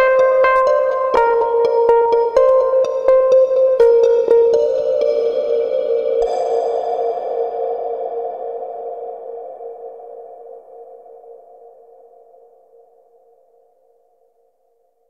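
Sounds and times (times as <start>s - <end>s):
held electronic chord: 0.0s - 8.0s.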